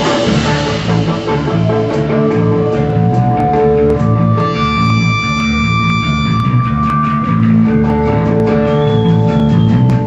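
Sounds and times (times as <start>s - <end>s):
ska punk band playing live: 0.0s - 10.0s.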